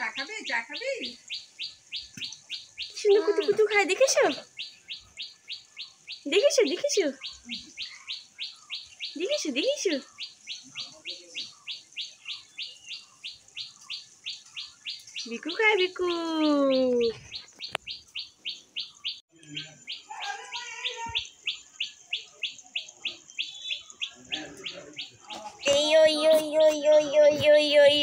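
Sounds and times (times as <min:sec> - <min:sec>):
small bird chirping: 0:00.0 - 0:28.0.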